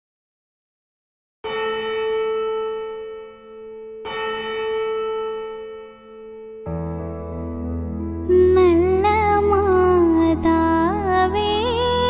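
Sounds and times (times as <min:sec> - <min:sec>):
deep bell tolling: 0:01.5 - 0:08.1.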